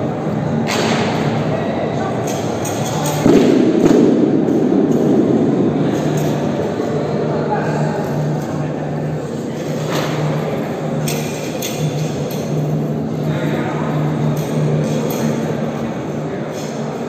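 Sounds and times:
low noise: 0.0 - 17.0
voices: 0.0 - 17.0.

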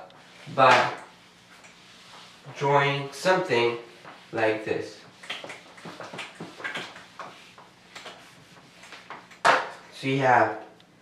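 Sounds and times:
eraser wiping whiteboard: 0.1 - 9.5.

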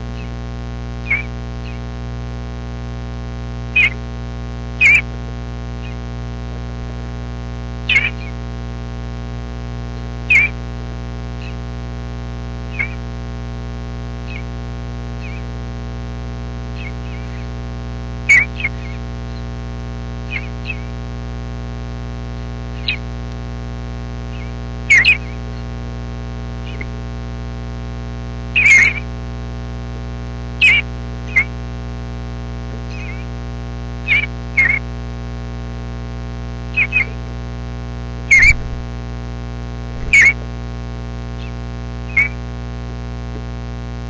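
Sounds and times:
bird chirps: 0.0 - 0.4, 1.0 - 1.8, 3.8 - 4.0, 4.8 - 5.0, 5.8 - 6.0, 7.9 - 8.4, 10.3 - 10.6, 12.7 - 13.0, 14.3 - 14.5, 15.2 - 15.5, 16.8 - 17.5, 18.3 - 19.4, 20.3 - 21.0, 22.8 - 23.0, 24.3 - 25.6, 26.7 - 26.9, 28.6 - 29.0, 30.6 - 31.5, 32.9 - 33.3, 34.1 - 34.8, 36.7 - 37.2, 38.3 - 38.8, 40.0 - 40.4, 41.4 - 42.4
steady electrical hum: 0.0 - 44.0.

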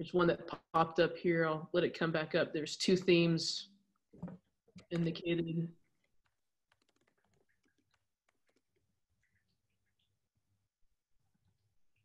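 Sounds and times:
typing on computer keyboard: 6.1 - 8.8.

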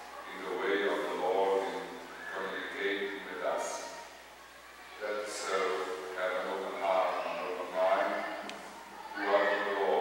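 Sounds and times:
man reciting prayers: 9.2 - 10.0.

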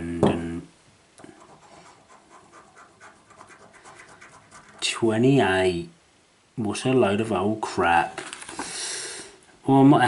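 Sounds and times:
coin scratching a scratchcard: 1.4 - 4.9.

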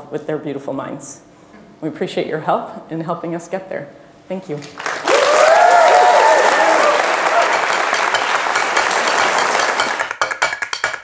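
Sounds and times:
audience applauding: 4.7 - 10.2
whooping cheers: 5.0 - 8.0
percussive music: 6.6 - 11.0.

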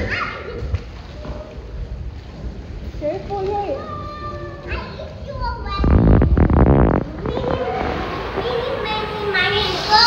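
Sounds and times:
children calling and squealing: 3.7 - 10.0.

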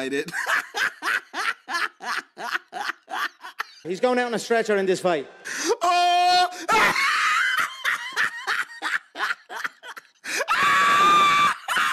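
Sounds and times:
person screaming: 5.6 - 8.2, 10.3 - 11.9.

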